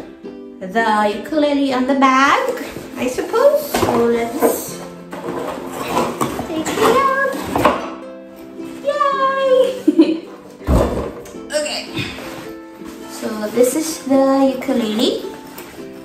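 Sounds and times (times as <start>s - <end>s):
background music: 0.0s - 16.0s
soft thump: 10.6s - 11.4s.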